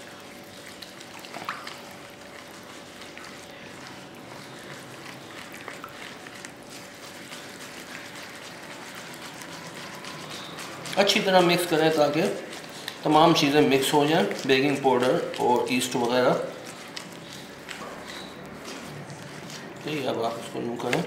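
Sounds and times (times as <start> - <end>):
wet dough squishing: 0.0 - 21.0.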